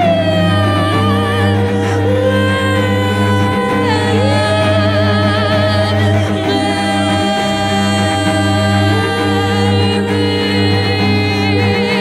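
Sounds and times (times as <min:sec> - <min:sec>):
layered female vocals with vibrato: 0:00.0 - 0:12.0
low drone: 0:00.0 - 0:12.0.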